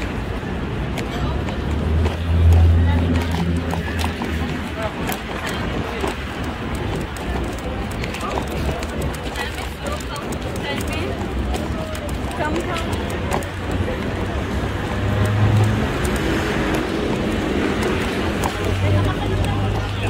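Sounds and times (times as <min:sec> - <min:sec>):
crowd murmur: 0:00.0 - 0:20.0
passers-by talking: 0:00.0 - 0:20.0.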